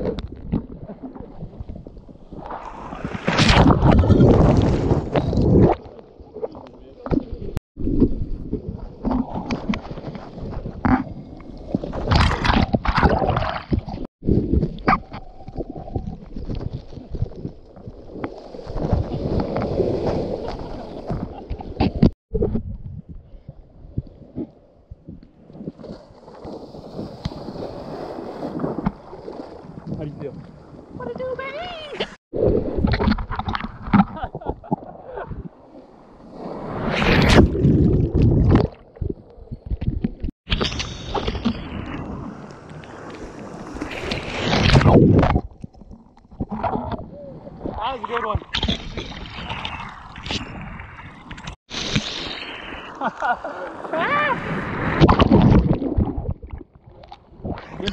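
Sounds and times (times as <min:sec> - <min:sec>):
waves breaking: 0:17.9 - 0:22.2, 0:25.4 - 0:38.9, 0:40.5 - 0:45.4, 0:46.4 - 0:57.9.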